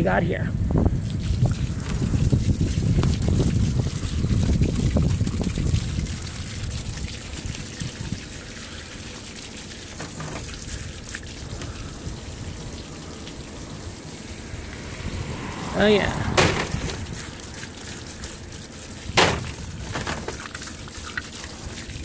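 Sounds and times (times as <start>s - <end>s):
hose water splashing on mesh: 1.0s - 22.0s
heavy low rumble: 11.4s - 20.3s.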